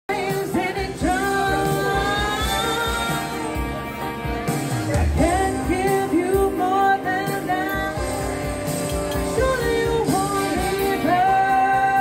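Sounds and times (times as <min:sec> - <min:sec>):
woman singing into a microphone: 0:00.1 - 0:03.7, 0:05.2 - 0:08.5, 0:09.2 - 0:12.0
musical accompaniment: 0:00.1 - 0:12.0.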